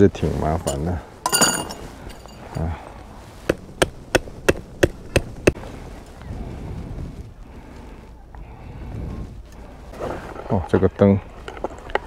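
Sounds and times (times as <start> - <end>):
rubbing and handling noise: 0.2 - 6.1.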